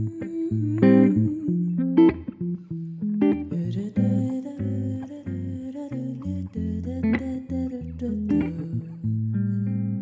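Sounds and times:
woman humming: 0.0s - 2.2s, 3.5s - 9.7s
electric guitar jazz chords: 0.0s - 6.0s.

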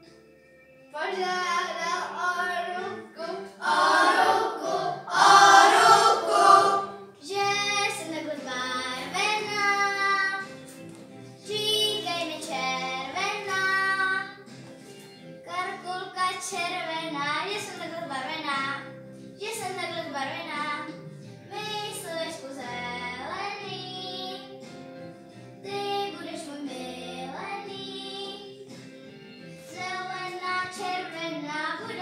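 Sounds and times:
quiet musical accompaniment: 0.0s - 32.0s
children singing: 1.7s - 7.0s.

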